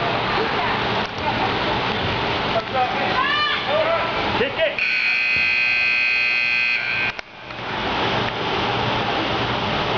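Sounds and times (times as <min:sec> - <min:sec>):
scoreboard buzzer: 0:04.8 - 0:07.2.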